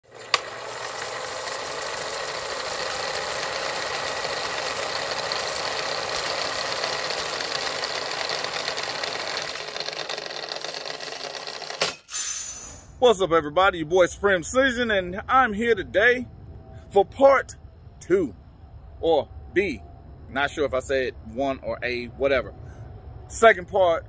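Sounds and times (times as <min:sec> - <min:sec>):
film projector clatter: 0:00.0 - 0:11.9.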